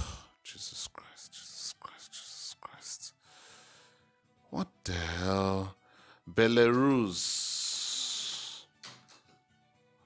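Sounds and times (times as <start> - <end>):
man whispering: 0.0 - 3.2, 7.2 - 8.7.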